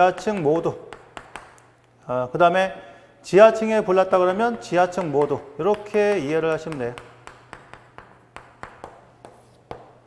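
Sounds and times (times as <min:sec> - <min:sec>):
chalk tapping and scraping on chalkboard: 0:00.0 - 0:01.8, 0:04.7 - 0:10.0.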